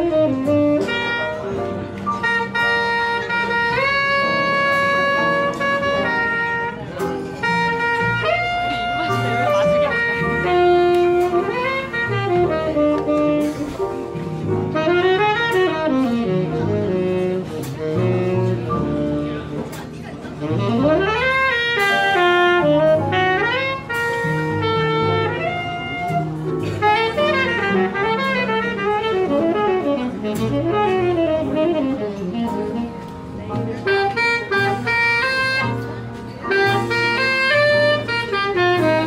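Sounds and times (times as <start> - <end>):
tenor saxophone improvising: 0.0 - 39.0
walking double bass: 0.0 - 39.0
drums with cymbals: 13.3 - 14.8, 36.5 - 39.0.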